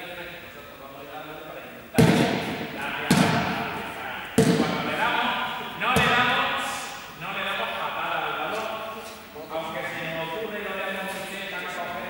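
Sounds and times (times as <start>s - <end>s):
ball impacts echoing: 1.9s - 7.1s.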